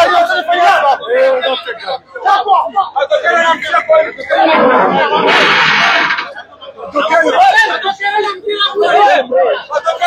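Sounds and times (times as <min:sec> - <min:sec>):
crowd of men's voices: 0:00.0 - 0:10.0.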